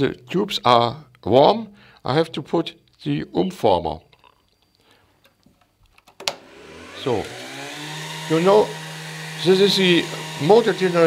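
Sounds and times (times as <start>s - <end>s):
motor generator whine and hum: 6.2s - 11.0s.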